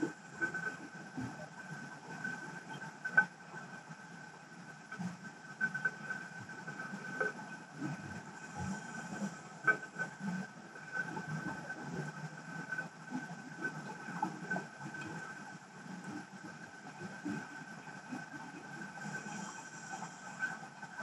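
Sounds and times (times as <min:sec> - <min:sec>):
high thin whine underwater: 0:00.0 - 0:21.0.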